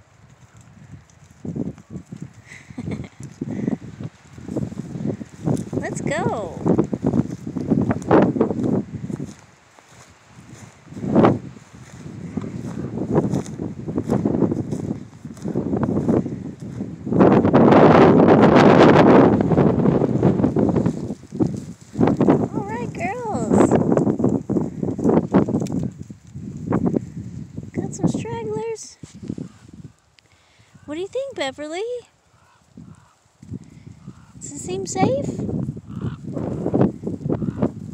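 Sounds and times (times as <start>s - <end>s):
rustling in dry grass: 0.0s - 37.9s.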